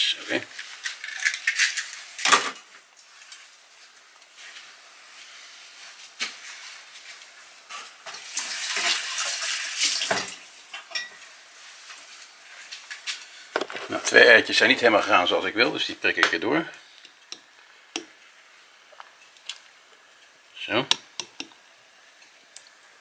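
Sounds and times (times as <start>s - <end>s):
bacon and eggs sizzling: 0.5s - 16.2s, 16.8s - 23.0s.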